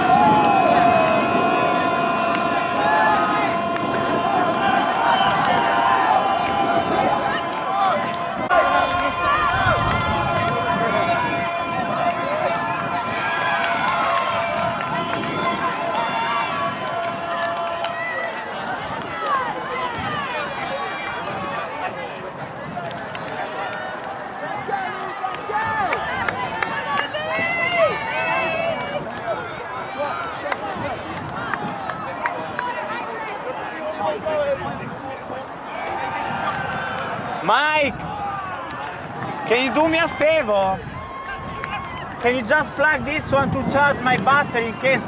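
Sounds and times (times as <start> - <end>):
steady held tone: 0.0 - 18.8
players calling and shouting: 0.0 - 45.0.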